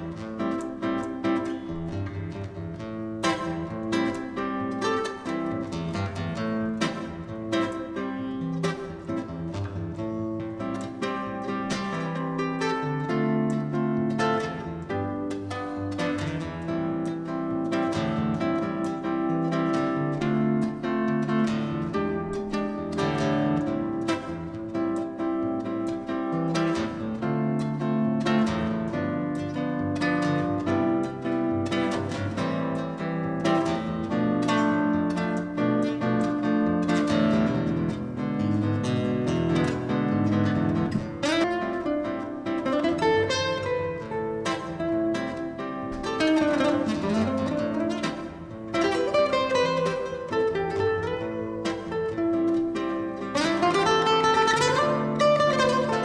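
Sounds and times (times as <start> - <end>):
acoustic guitar plucked notes: 0.0 - 56.0.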